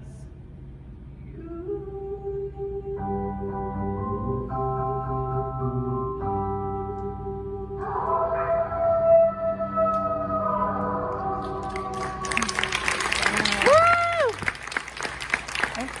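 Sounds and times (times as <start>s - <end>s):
held sung note with backing chord: 1.3s - 12.4s
audience applause: 11.5s - 16.0s
person whooping: 13.3s - 14.5s.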